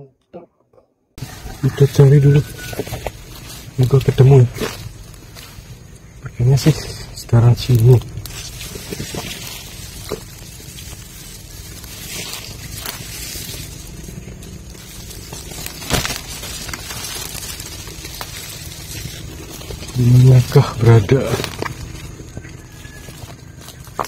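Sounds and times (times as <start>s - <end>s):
footsteps in dry leaves: 1.2s - 24.0s.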